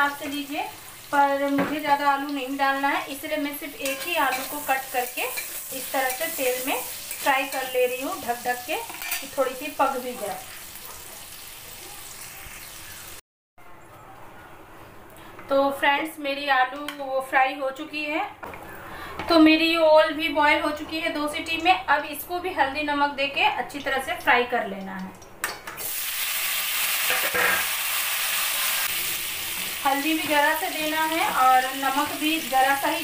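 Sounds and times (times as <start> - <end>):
potatoes sizzling in hot oil: 0.0 - 13.2, 25.8 - 33.0.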